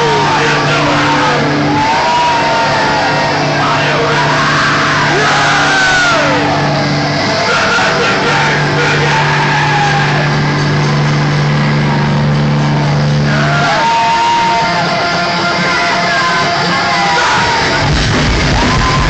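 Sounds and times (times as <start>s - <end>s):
low drone over a pa: 0.0s - 14.3s
crowd shouting: 0.0s - 19.0s.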